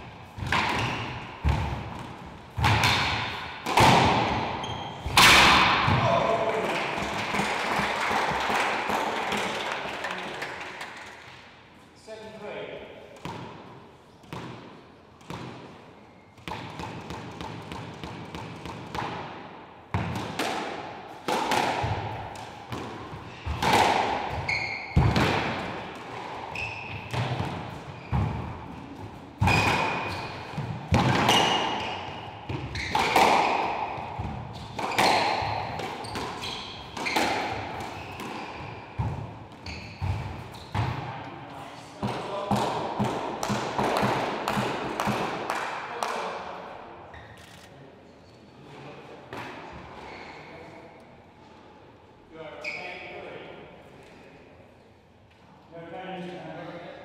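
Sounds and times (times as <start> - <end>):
squash ball cracks off racket and walls: 0.0 - 9.6, 13.1 - 15.8, 16.4 - 41.2, 42.0 - 46.6
court shoes squeaking on wooden floor: 4.4 - 5.2, 24.3 - 25.2, 26.5 - 41.0, 50.0 - 50.5, 52.6 - 53.0.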